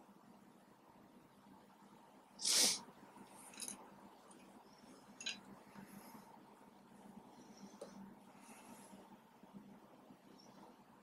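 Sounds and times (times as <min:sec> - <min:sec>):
sharp burst of breath: 0:02.4 - 0:02.8.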